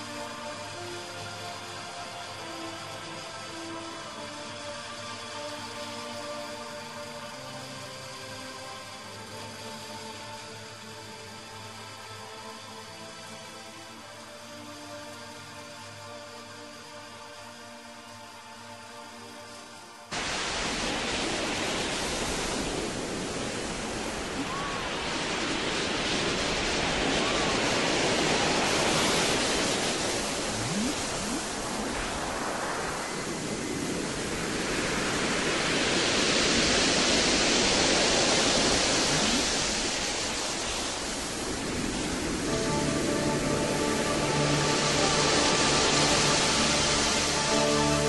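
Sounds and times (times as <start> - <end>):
soft pitched music: 0.0 - 20.1, 28.8 - 32.2, 41.6 - 48.0
dense rushing noise: 20.2 - 48.0
faint gliding tones: 27.1 - 34.3.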